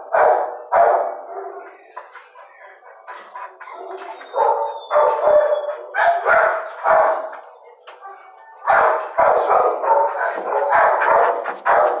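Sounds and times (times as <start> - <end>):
dogs barking: 0.0 - 7.5, 8.2 - 12.0.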